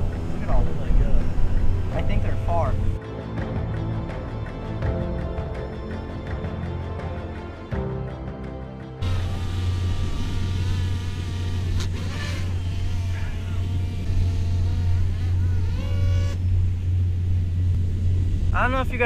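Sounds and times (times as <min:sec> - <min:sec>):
low wind rumble on microphone: 0:00.0 - 0:03.0, 0:09.0 - 0:19.0
background music: 0:00.0 - 0:12.6
drone propellers whining: 0:09.0 - 0:19.0.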